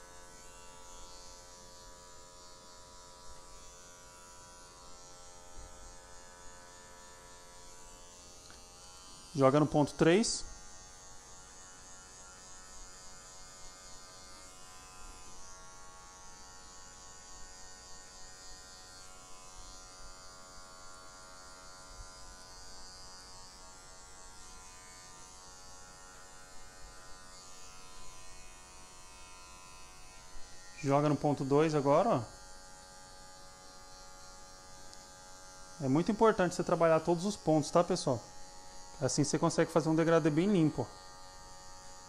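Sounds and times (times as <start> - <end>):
electric hair clipper buzzing: 0.0 - 42.0.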